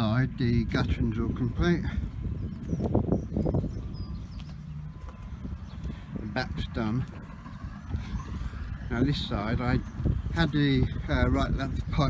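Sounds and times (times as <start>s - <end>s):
distant vehicle engine: 0.0s - 12.0s
wind rumble on microphone: 0.0s - 12.0s.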